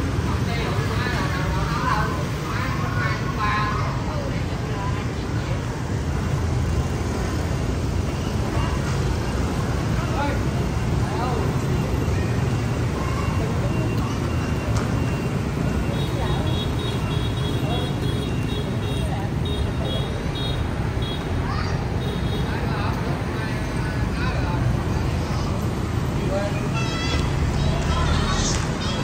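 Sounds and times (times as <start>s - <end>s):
motorbikes and cars passing: 0.0s - 29.0s
people chattering: 0.0s - 29.0s.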